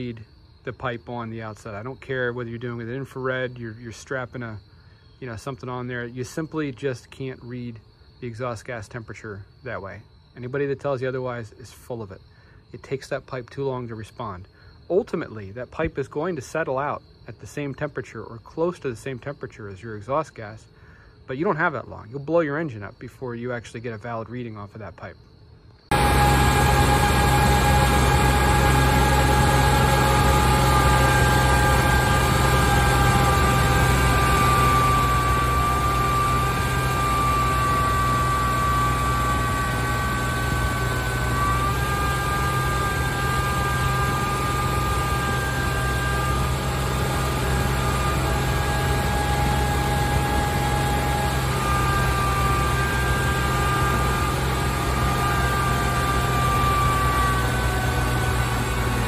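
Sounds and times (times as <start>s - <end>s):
thin steady whine: 0.0s - 59.0s
tractor diesel engine under load: 25.9s - 59.0s.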